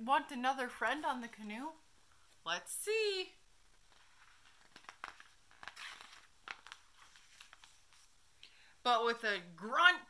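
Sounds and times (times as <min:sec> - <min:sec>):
paper page turning: 0:03.7 - 0:08.1.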